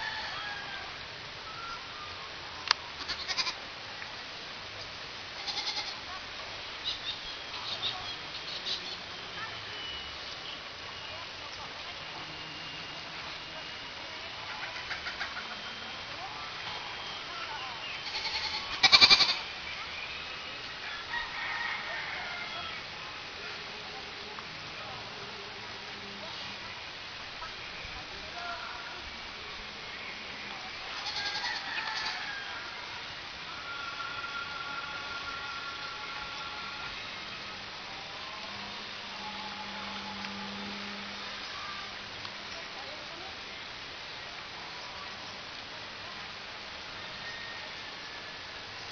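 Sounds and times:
constant hiss: 0.0 - 48.9
faint high whine: 0.0 - 48.9
outdoor background noise: 0.0 - 48.9.

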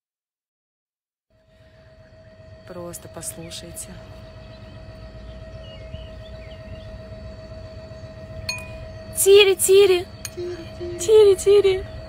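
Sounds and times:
steady hum: 1.3 - 12.0
low rumble: 1.4 - 12.0
faint bird chirps: 3.3 - 9.2.

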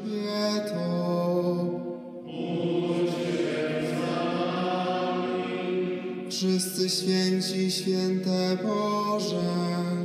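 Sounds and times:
slow vocal chant: 0.0 - 10.0.

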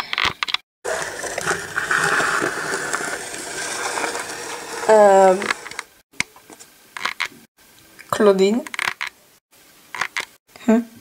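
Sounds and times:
steady rain falling: 0.9 - 6.0.

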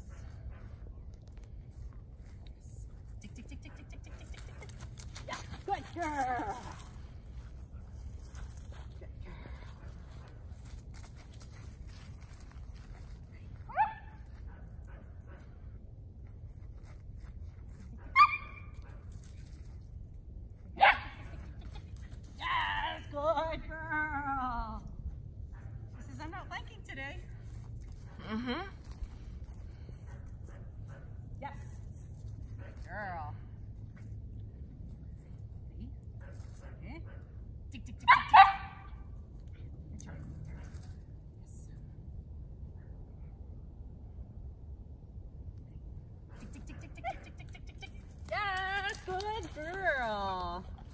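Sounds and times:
dog barking: 38.1 - 39.0.

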